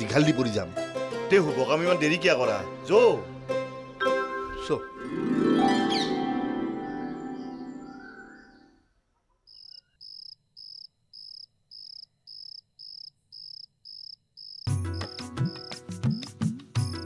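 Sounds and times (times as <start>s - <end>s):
music: 0.0s - 8.6s, 14.7s - 17.0s
loud music: 3.3s - 8.0s
cricket chirping: 9.5s - 17.0s.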